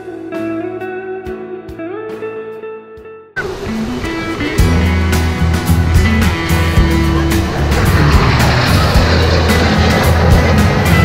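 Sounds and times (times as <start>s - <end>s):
music with steady beat: 0.0s - 11.0s
jet flying past: 3.4s - 11.0s.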